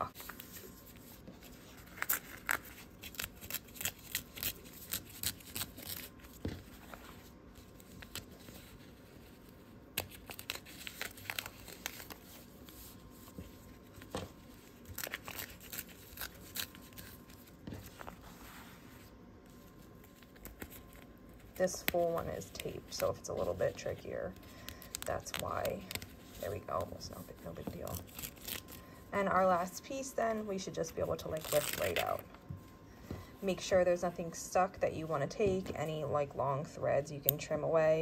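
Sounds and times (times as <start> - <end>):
paper tearing: 1.7 - 6.3, 14.8 - 17.3, 31.3 - 32.2.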